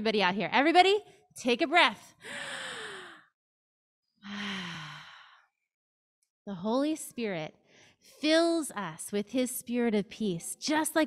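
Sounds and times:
deep breath in: 2.2 - 3.3, 4.2 - 5.5.

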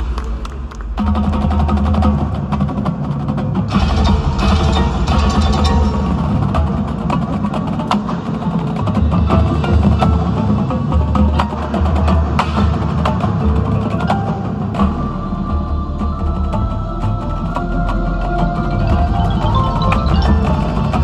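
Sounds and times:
drum strikes: 0.0 - 15.0, 18.6 - 21.0
mallet keyboards: 17.6 - 21.0.

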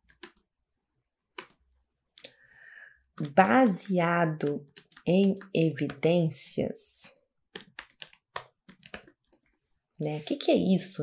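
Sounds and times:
computer keyboard typing: 0.0 - 0.5, 1.3 - 1.6, 3.2 - 6.2, 7.5 - 9.4.

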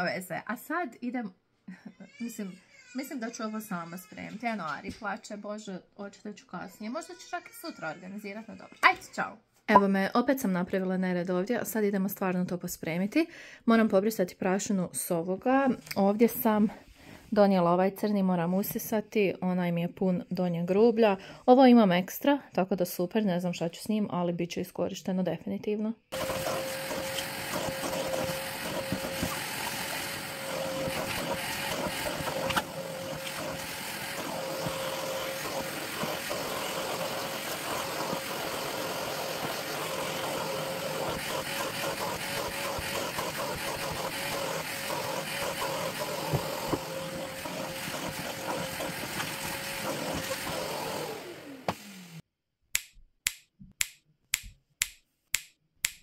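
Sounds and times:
vacuum cleaner running: 26.1 - 52.2.

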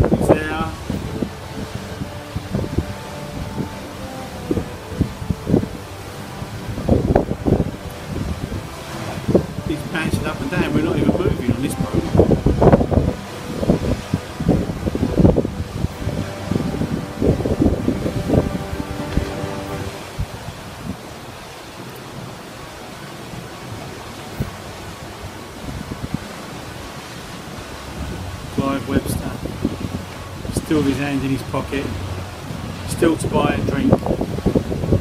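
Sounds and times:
sea rushing: 0.0 - 35.0
wind buffeting microphone: 0.0 - 35.0.

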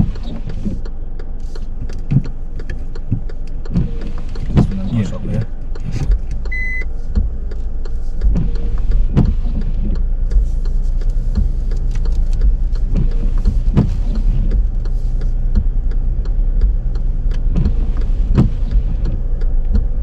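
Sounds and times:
car engine low rumble: 0.0 - 20.0
light clicks and knocks: 0.0 - 20.0
short electronic beep: 6.5 - 6.9.

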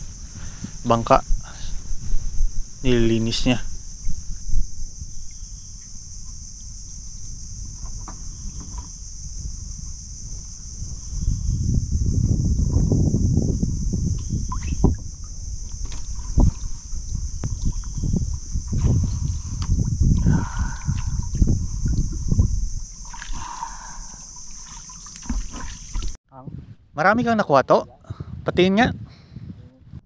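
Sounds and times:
steady high hiss: 0.0 - 12.1
low knocks and rumble: 6.2 - 23.0
water sloshing and lapping: 14.5 - 26.2.

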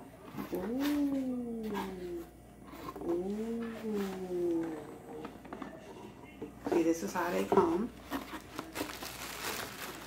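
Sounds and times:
woman making ooh sounds: 0.5 - 2.2.

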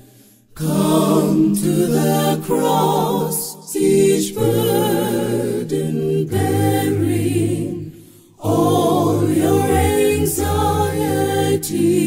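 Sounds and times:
choir singing a hymn a cappella: 0.0 - 12.0.

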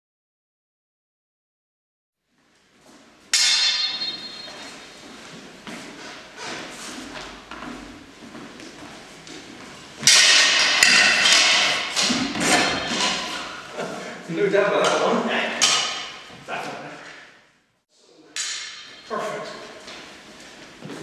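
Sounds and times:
steel swords clashing: 3.3 - 5.0, 10.0 - 13.7, 14.8 - 16.3, 18.4 - 19.6
footsteps on wooden floor: 4.2 - 10.0, 19.8 - 21.0.

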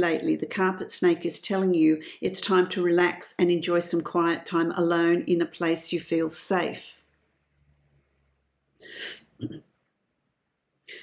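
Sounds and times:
woman's low throat sound: 9.4 - 9.7.

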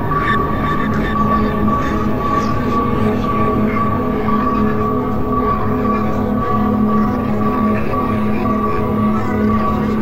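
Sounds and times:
dark ambient electronic music: 0.0 - 10.0.

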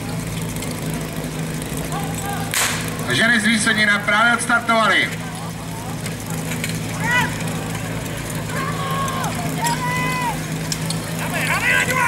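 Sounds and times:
fire pump engine running: 0.0 - 12.0
voices shouting long calls: 6.9 - 10.6, 11.2 - 12.0.

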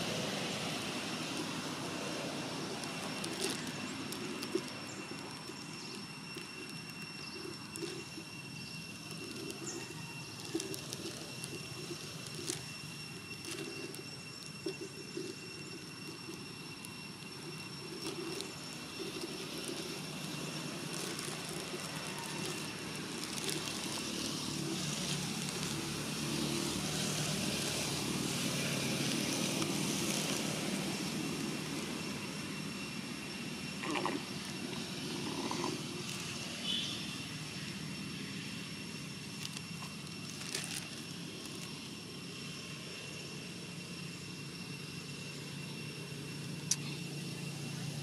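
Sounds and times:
distant engine noise: 0.0 - 48.0
steady high whine: 0.0 - 48.0.

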